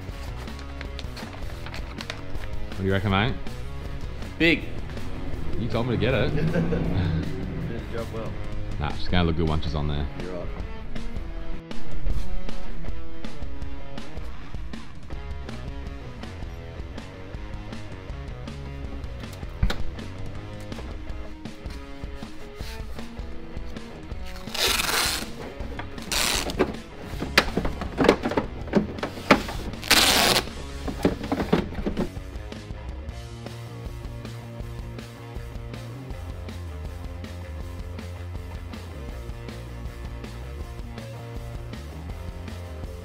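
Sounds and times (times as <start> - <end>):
background music with steady beat: 0.0 - 43.0
loud rushes of noise: 4.4 - 8.6.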